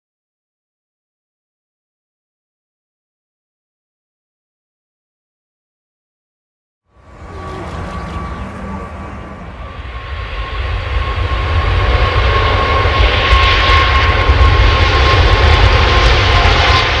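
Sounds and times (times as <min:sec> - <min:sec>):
jet airliner flying overhead: 0:06.9 - 0:17.0.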